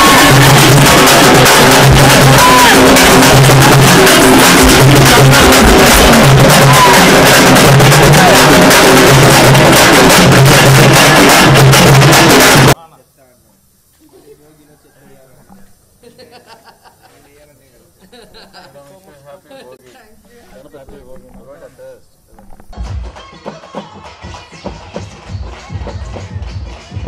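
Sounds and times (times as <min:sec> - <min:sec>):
loud drum-heavy music: 0:00.0 - 0:12.8, 0:22.7 - 0:27.0.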